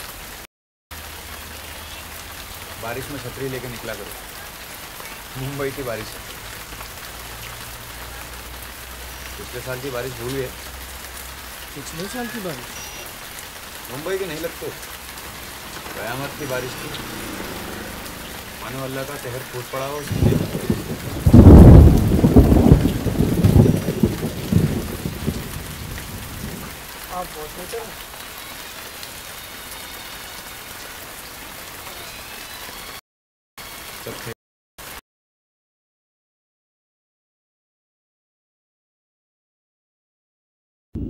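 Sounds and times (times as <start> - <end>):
rain falling: 0.0 - 33.0, 33.6 - 35.0
rain drop ticks: 1.0 - 29.4
thunder rumbling: 13.9 - 27.7.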